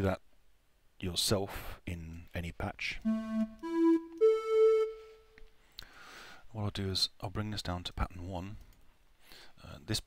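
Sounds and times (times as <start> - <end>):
synthesizer flute lead notes: 3.0 - 5.5.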